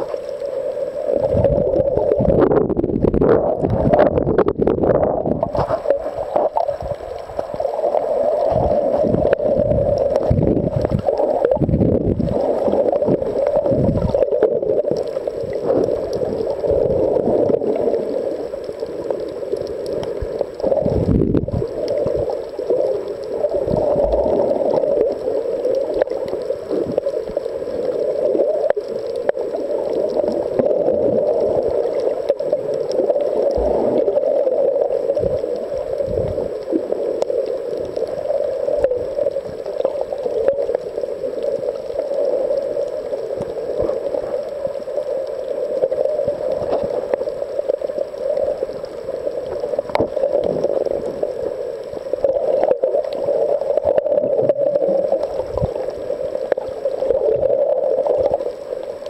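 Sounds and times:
underwater rushing water: 0.0 - 59.0
low underwater thumps: 2.2 - 5.8.

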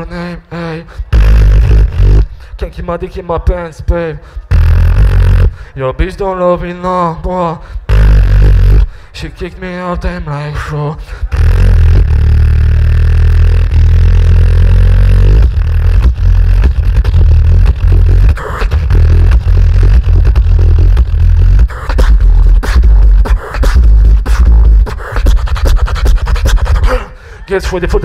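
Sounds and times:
beatboxing into microphone: 0.0 - 28.0.

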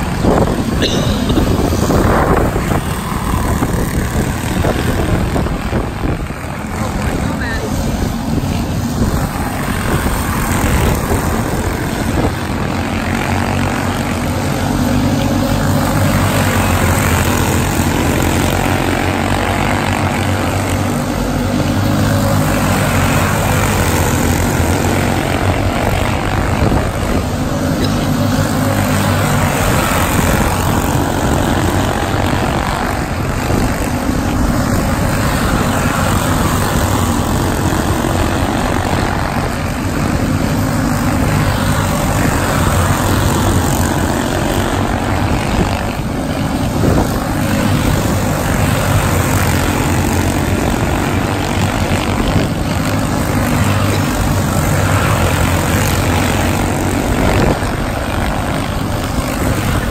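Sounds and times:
small race car engines buzzing: 0.0 - 59.9.

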